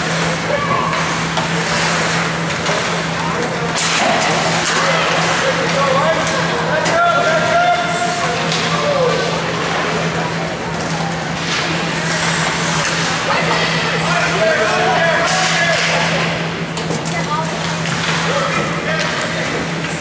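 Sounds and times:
indistinct shouts and chatter: 0.0s - 19.7s
steady low hum: 0.0s - 20.0s
skates scraping ice: 0.1s - 10.0s, 11.4s - 16.3s.

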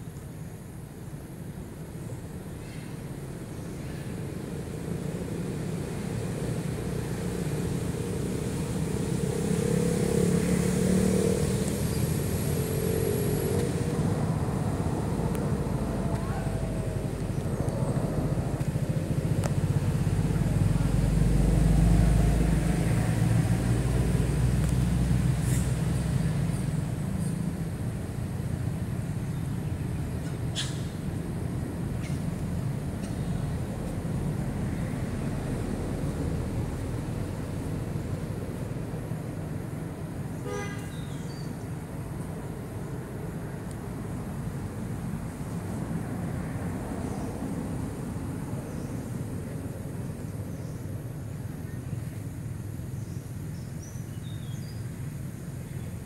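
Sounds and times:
vehicle engine rumble: 0.0s - 56.0s.

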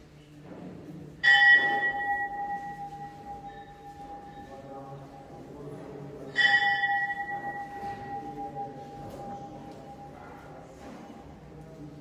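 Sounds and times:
temple bell ringing: 1.2s - 10.8s.

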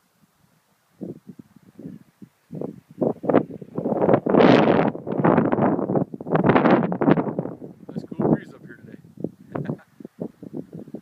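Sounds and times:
wind buffeting microphone: 0.9s - 11.0s.

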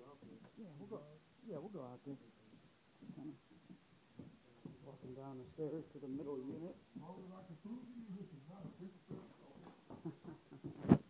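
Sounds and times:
footsteps going down stairs: 2.5s - 5.7s, 6.4s - 10.8s.

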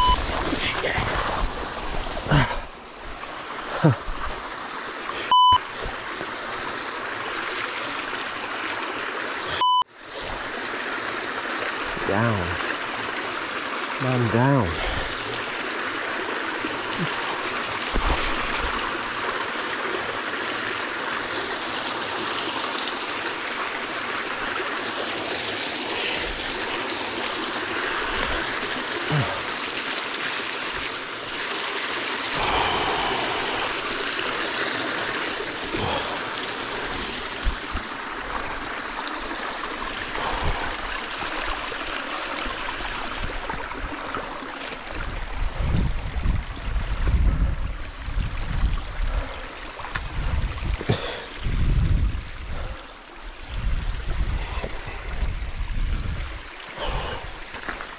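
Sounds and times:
stream running over stones: 0.0s - 57.9s.

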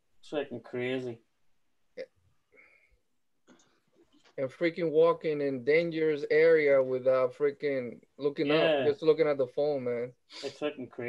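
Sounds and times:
man speaking: 0.2s - 1.3s, 4.4s - 11.0s.

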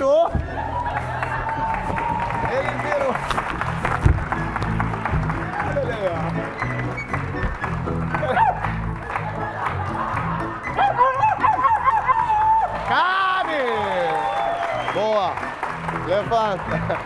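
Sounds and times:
band playing a tune: 2.0s - 10.6s.

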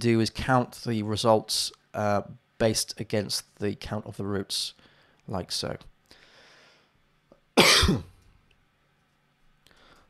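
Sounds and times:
man coughing: 7.6s - 8.2s.

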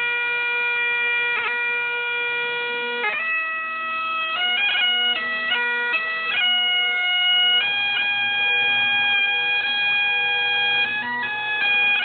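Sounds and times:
bagpipes playing: 0.0s - 12.0s.

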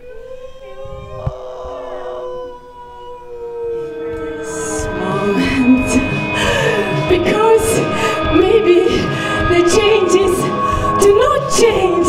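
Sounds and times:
voices holding long notes: 0.0s - 12.0s.

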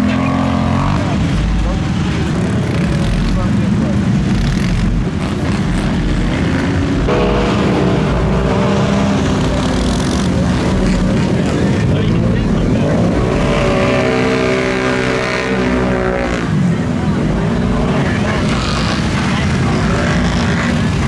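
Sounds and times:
engine holding high-revving note: 0.0s - 21.0s
quad bike engines revving: 0.0s - 21.0s.

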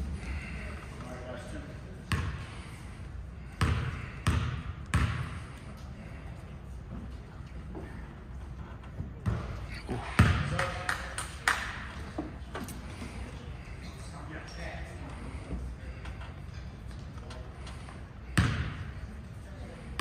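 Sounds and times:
basketball bouncing on gym floor: 2.1s - 2.4s, 3.5s - 5.4s, 10.2s - 10.8s, 18.3s - 19.0s.

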